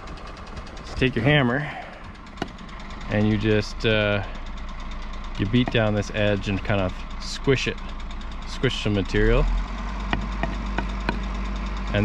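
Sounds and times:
steady low hum: 0:00.0 - 0:12.0
rubber mallet knocking on wood: 0:10.1 - 0:11.2.

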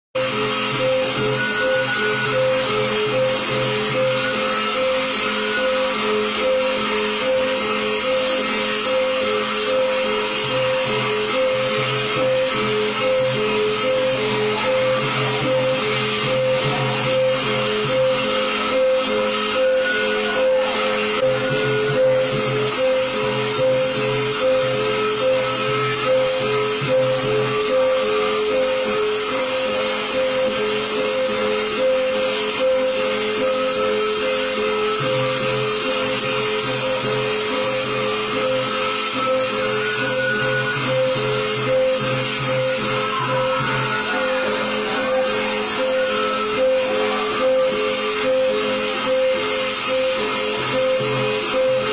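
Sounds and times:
long wooden drum beating: 0:00.2 - 0:51.9.

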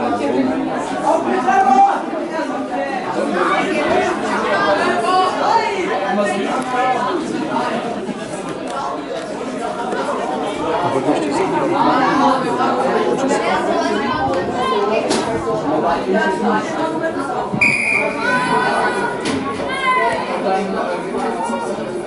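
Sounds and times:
people chatting: 0:00.0 - 0:22.0.

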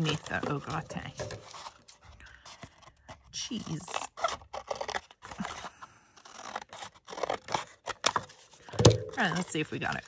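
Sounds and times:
scissors snipping cardboard: 0:03.3 - 0:09.3.

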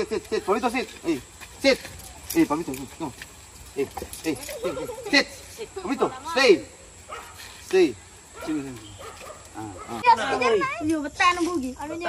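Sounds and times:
dog barking: 0:07.1 - 0:07.5, 0:08.3 - 0:10.1.

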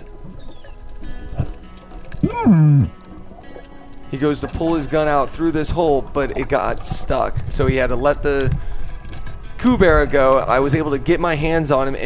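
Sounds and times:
quiet music with held tones: 0:00.0 - 0:12.0.

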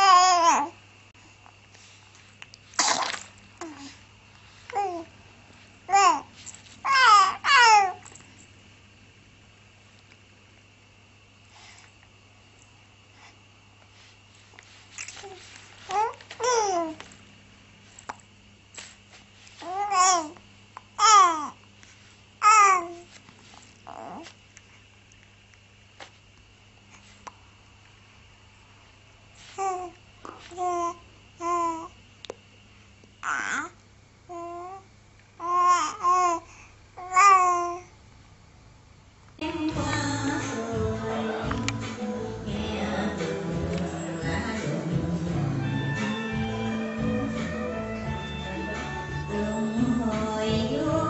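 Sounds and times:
baby babbling: 0:00.0 - 0:00.8, 0:04.7 - 0:05.1, 0:05.9 - 0:08.0, 0:15.2 - 0:17.0, 0:19.6 - 0:20.4, 0:21.0 - 0:21.6, 0:22.4 - 0:23.1, 0:29.6 - 0:31.9, 0:33.2 - 0:37.9
baby coughing: 0:02.8 - 0:03.2.

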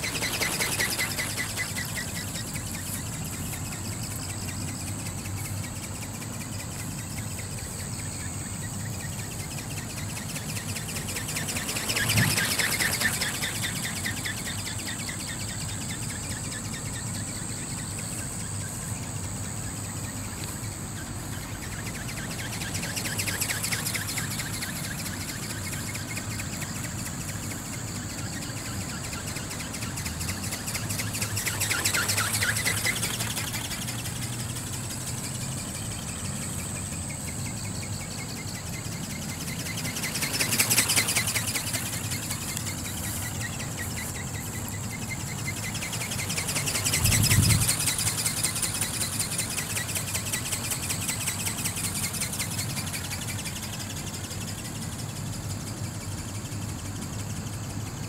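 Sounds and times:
model ornithopter motor buzzing: 0:00.0 - 0:18.4, 0:19.0 - 0:57.8.

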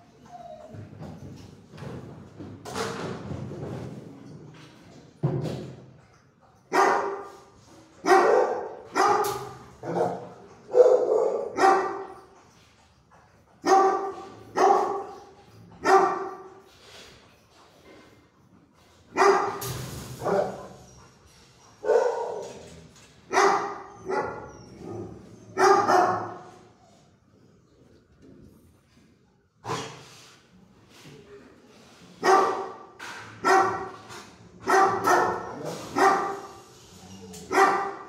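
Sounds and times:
dog barking: 0:06.7 - 0:07.3, 0:08.0 - 0:12.1, 0:13.6 - 0:15.1, 0:15.8 - 0:16.4, 0:19.2 - 0:19.6, 0:21.8 - 0:22.5, 0:23.3 - 0:24.4, 0:25.6 - 0:26.4, 0:32.2 - 0:32.8, 0:33.4 - 0:34.0, 0:34.6 - 0:36.5, 0:37.5 - 0:38.0.

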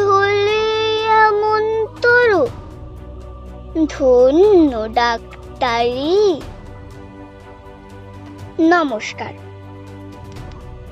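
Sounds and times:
child reciting: 0:00.0 - 0:02.6, 0:03.8 - 0:06.5, 0:08.5 - 0:09.4
soft background music: 0:00.0 - 0:10.9.

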